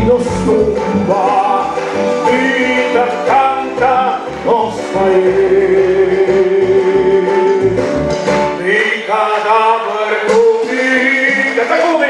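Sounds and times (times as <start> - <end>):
man singing into microphone: 0.0 - 12.0
musical accompaniment: 0.0 - 12.0.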